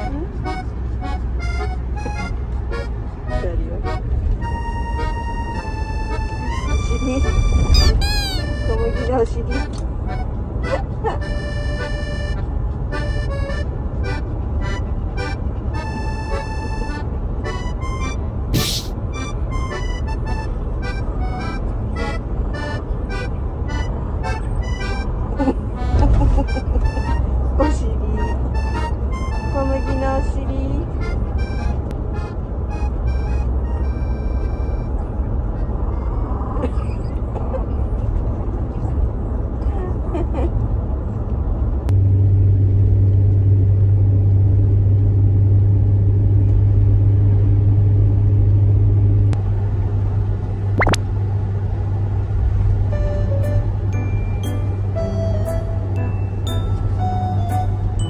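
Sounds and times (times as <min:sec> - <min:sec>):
van rumbling while moving: 0:00.0 - 0:58.0
light background music: 0:26.9 - 0:31.8, 0:53.0 - 0:58.0.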